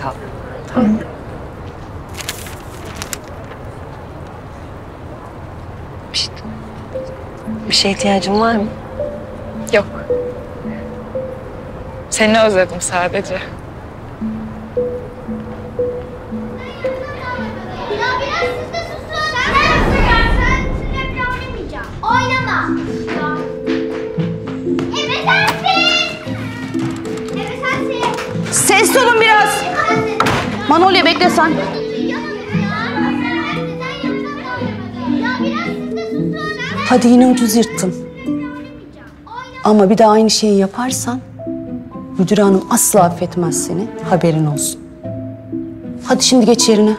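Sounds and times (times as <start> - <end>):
children chattering and calling: 0.0 - 46.9
soft background music: 5.4 - 46.9.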